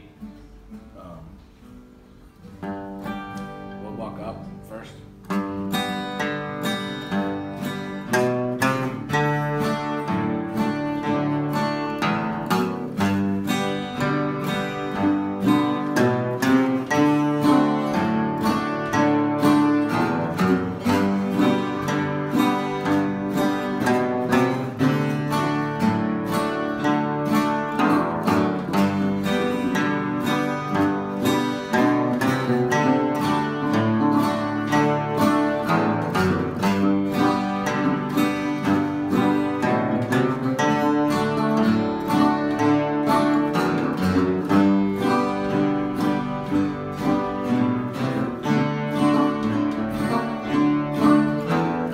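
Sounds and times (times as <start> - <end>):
acoustic guitar playing: 0.0 - 51.9.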